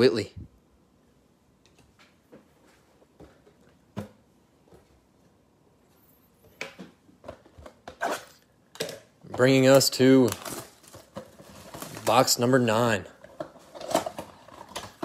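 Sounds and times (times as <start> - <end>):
plastic wrap rustling: 9.3 - 15.0.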